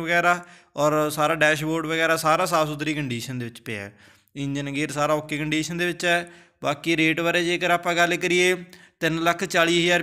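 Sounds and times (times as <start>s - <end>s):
man speaking in sing-song voice: 0.0s - 10.0s.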